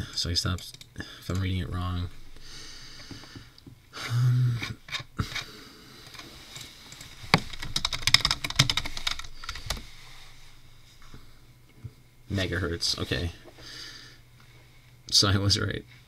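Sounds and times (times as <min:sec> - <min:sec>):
typing on computer keyboard: 0:06.9 - 0:09.8.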